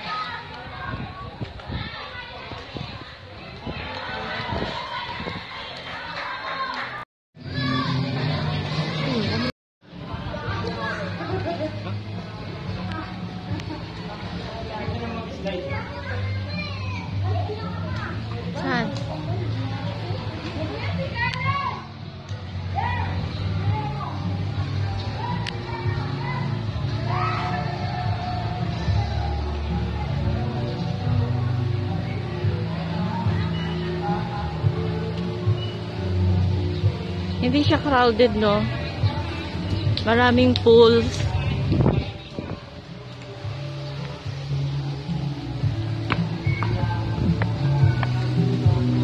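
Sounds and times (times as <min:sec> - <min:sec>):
children shouting: 0:00.0 - 0:09.5, 0:15.7 - 0:18.2, 0:20.8 - 0:22.0, 0:22.7 - 0:30.6
children playing: 0:00.0 - 0:37.3, 0:38.6 - 0:49.0
background music with bass line: 0:07.4 - 0:49.0
people talking: 0:37.4 - 0:42.2.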